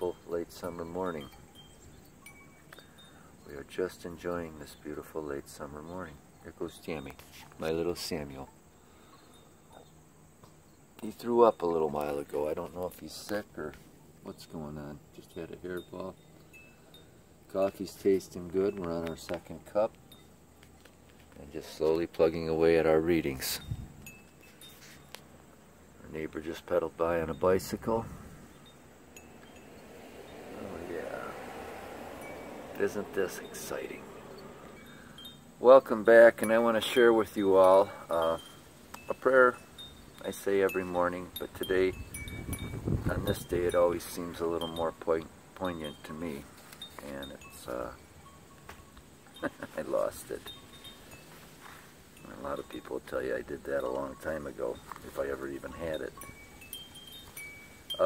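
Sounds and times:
metal wind chime tones: 0:00.0 - 0:58.0.

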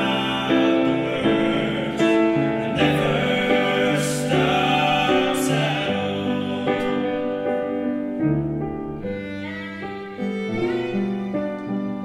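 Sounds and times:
bowed violin slow melody: 0:00.0 - 0:12.0.

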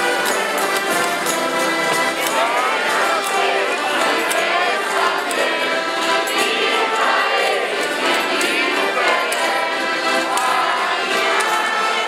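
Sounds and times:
crowd singing in chorus: 0:00.0 - 0:12.0
jingling hand percussion: 0:00.0 - 0:12.0.

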